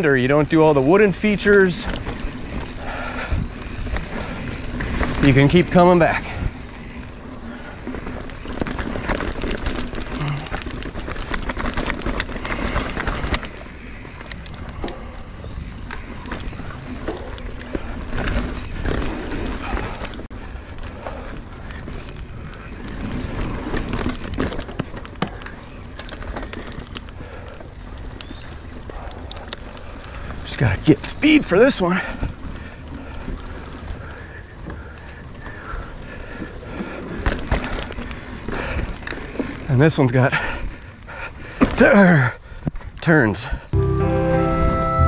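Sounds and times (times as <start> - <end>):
bike rattling and knocking: 0.0 - 43.0
bike tyres rolling on dirt: 0.0 - 43.8.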